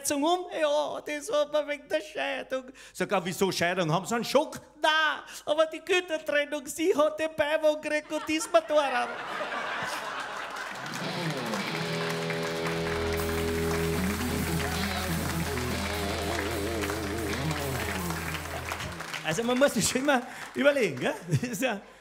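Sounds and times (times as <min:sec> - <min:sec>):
audience laughing and applauding: 0:08.1 - 0:21.6
live band playing: 0:10.8 - 0:19.4.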